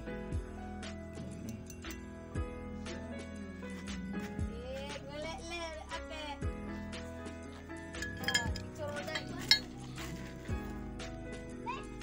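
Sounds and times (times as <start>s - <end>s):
background music: 0.0s - 12.0s
metal tubes clinking: 1.2s - 2.1s, 7.9s - 10.7s.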